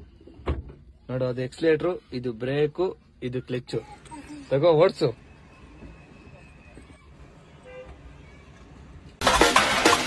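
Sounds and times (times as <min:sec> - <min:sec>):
loud street scene with vehicle: 0:00.0 - 0:10.0.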